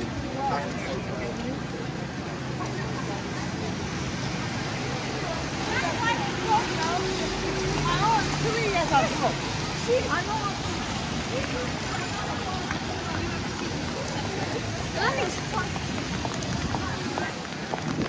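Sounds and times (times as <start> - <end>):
people talking: 0.0 - 18.0
traffic on wet road: 0.0 - 18.0.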